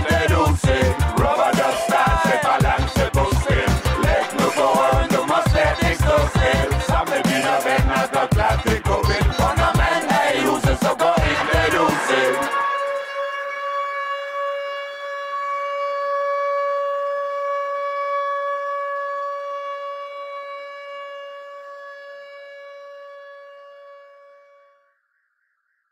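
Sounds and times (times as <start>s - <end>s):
long held synth note: 10.5s - 24.9s.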